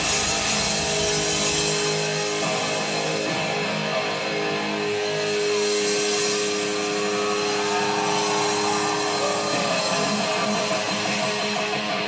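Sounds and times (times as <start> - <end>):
distorted electric guitar note: 0.0 - 12.0
rock band over loud pa: 0.0 - 12.0.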